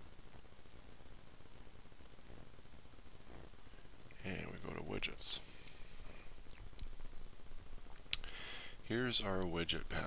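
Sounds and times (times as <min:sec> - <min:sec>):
faint room hum: 0:00.0 - 0:10.0
computer mouse clicking: 0:02.1 - 0:02.4, 0:03.1 - 0:03.4.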